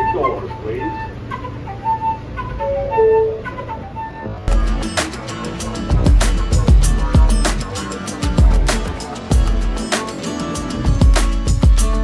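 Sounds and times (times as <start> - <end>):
small flute playing tune: 0.0 - 8.6
subway car rumble: 0.0 - 11.0
background music with beat: 4.5 - 12.0.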